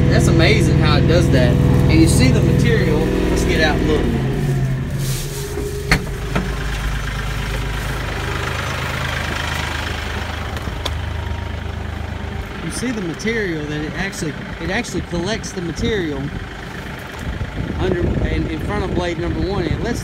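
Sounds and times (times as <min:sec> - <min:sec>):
tractor diesel engine idling: 0:00.0 - 0:20.0.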